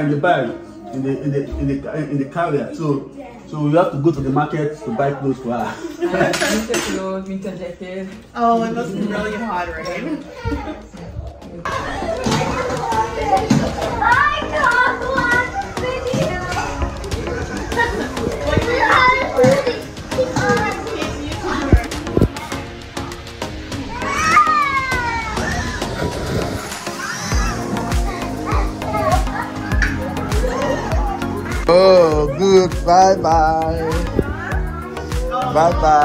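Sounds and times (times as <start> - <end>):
adults talking: 0.0 - 36.0
children calling and chattering: 0.0 - 36.0
background music with drum beat: 10.8 - 36.0.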